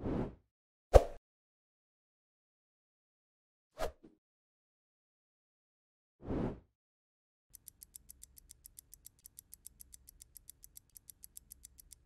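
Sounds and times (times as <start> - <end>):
rapid clock ticking: 7.5 - 12.0.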